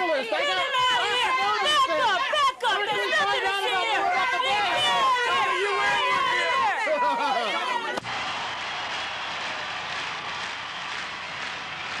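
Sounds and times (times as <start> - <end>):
people talking over one another: 0.0 - 8.0.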